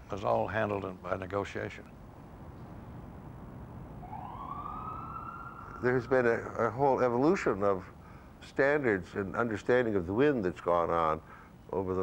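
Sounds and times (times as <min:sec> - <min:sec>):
city background hum: 0:00.0 - 0:12.0
siren wailing: 0:04.0 - 0:07.0.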